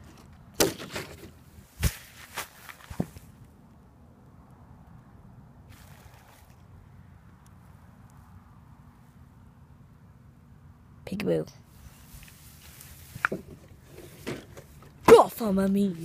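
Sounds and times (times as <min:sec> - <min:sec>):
short rustle: 0:00.9 - 0:03.4, 0:11.7 - 0:14.9
faint outdoor hush: 0:01.3 - 0:16.0.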